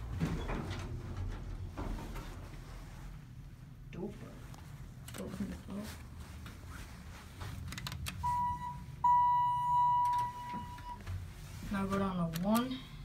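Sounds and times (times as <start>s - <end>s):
elevator beeper: 8.2s - 11.0s.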